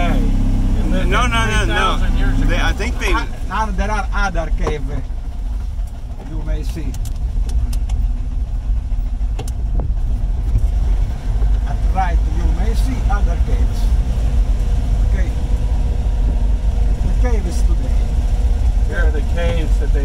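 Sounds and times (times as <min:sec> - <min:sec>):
car engine low rumble: 0:00.0 - 0:20.0.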